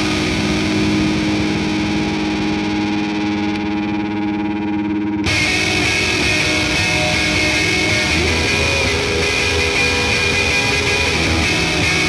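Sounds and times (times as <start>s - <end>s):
distorted electric guitar notes: 0.0s - 12.0s.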